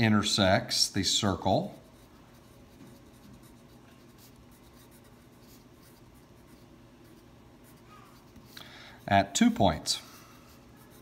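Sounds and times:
pencil scratching on paper: 1.6s - 9.1s, 10.5s - 11.0s.

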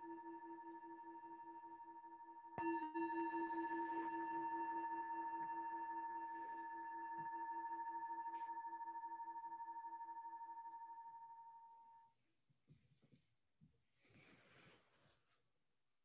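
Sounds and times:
singing bowl ringing: 0.0s - 11.9s.

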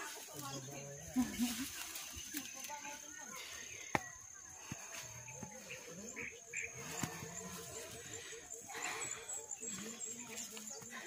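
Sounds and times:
footsteps through grass: 0.0s - 3.7s
faint indistinct voices: 0.0s - 11.0s.

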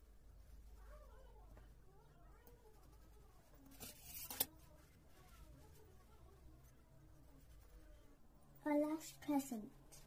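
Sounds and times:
faint room sound: 0.0s - 10.0s
plastic stencil scraping on card: 3.7s - 4.6s.

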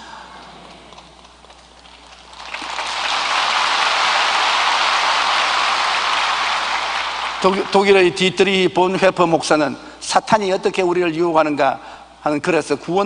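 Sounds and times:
congregation applauding: 1.6s - 8.6s.

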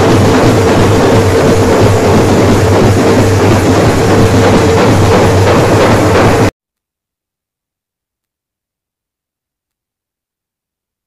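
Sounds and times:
street drum band playing: 0.0s - 6.5s.

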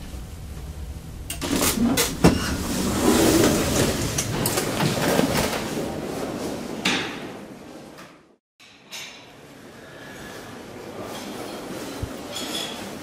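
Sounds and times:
elevator travel hum: 0.0s - 6.8s.

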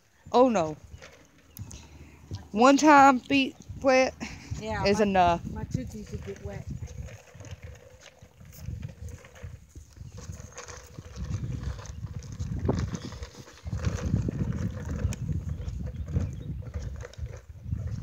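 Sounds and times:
low rumble on microphone: 0.2s - 18.0s
footsteps on pavement: 0.6s - 11.2s.

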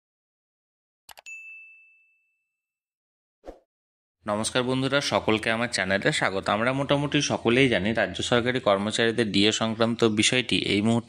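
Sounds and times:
bright bell ding: 1.2s - 2.5s.

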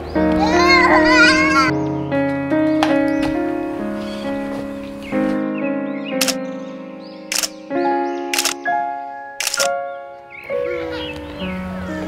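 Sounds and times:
background music with held chords: 0.0s - 12.0s
camera shutter click: 6.2s - 6.4s, 7.3s - 7.6s, 8.3s - 8.6s, 9.4s - 9.7s.

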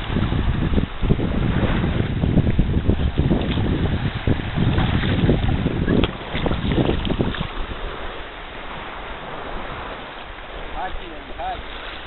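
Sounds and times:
water lapping and splashing: 0.0s - 12.0s
wind rumbling on microphone: 0.0s - 12.0s.

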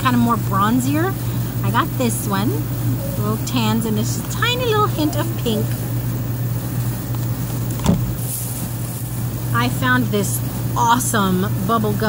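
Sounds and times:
air conditioner humming: 0.0s - 12.0s.

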